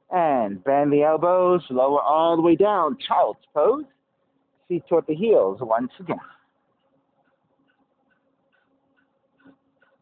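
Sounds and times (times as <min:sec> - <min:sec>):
faint regular ticking: 0:06.2 - 0:10.0.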